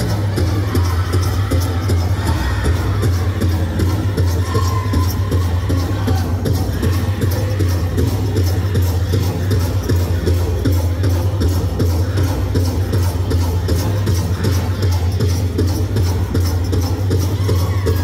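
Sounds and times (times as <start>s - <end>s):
large drum steady beat: 0.0s - 18.0s.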